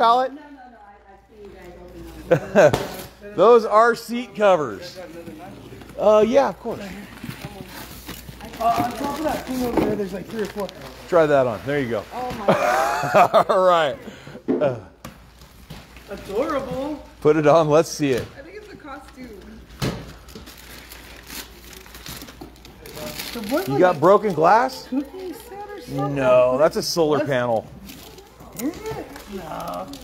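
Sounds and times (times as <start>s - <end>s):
cardboard and plastic rustling: 4.8s - 12.6s, 15.1s - 17.2s, 17.9s - 26.0s, 26.9s - 30.0s.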